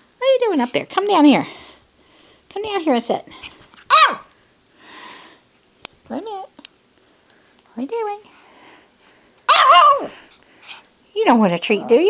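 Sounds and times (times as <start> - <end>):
small dog barking: 3.9 - 4.3, 9.5 - 10.2.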